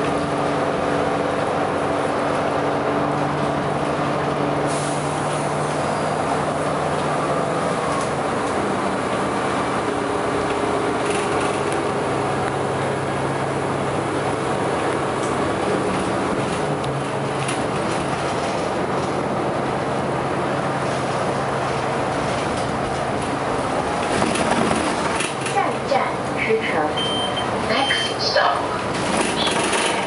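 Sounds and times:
bus engine drone: 0.0s - 30.0s
road noise: 0.0s - 30.0s.

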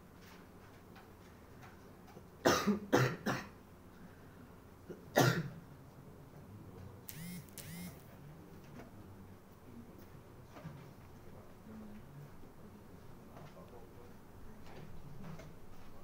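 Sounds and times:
person coughing: 2.4s - 3.5s, 5.2s - 5.5s.

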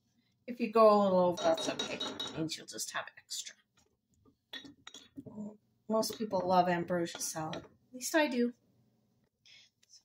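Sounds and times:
wooden spoon clinking on container: 1.4s - 2.5s.

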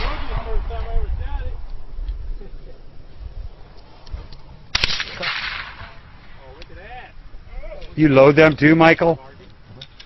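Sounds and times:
handgun shot with echo: 4.7s - 6.0s.

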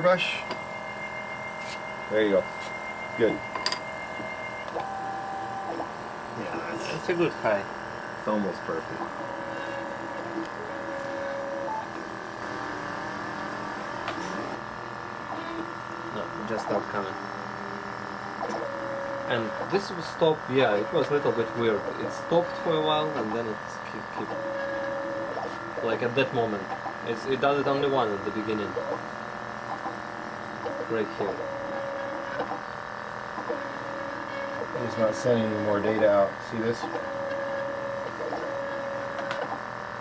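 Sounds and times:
machine humming: 0.0s - 40.0s
stepper motors whining: 15.2s - 32.6s.

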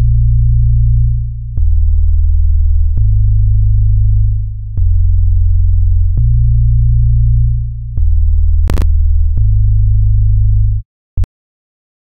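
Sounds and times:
deep synthesized bass notes: 0.0s - 10.8s
brief noisy crackle: 8.7s - 8.9s.

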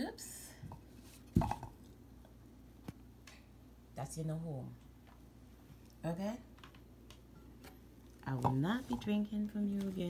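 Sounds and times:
glass bottle knocking on mug: 1.4s - 1.8s.

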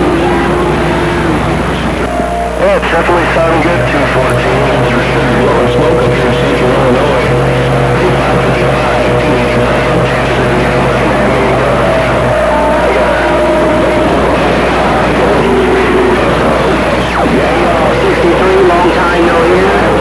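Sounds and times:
garbled radio voices: 0.0s - 20.0s
radio static hiss: 0.0s - 20.0s
whistling heterodyne tones: 0.0s - 20.0s.

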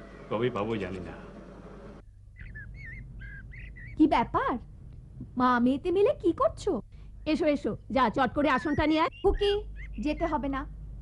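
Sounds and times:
bird chirping: 2.0s - 4.3s, 7.1s - 10.7s.

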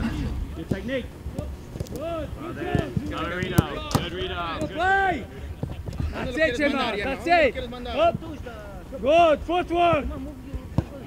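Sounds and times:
men calling out: 0.0s - 11.0s.

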